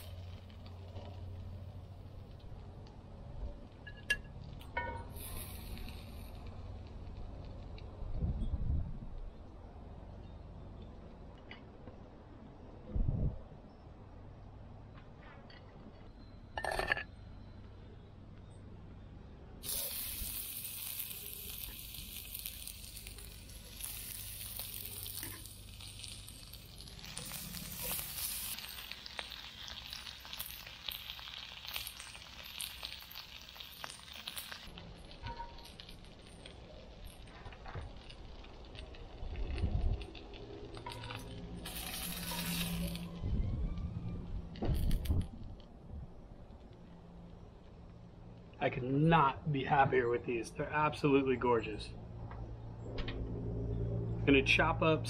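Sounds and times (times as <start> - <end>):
food sizzling in oil: 0.0 - 2.0, 4.8 - 6.8, 19.6 - 37.3, 40.7 - 43.2.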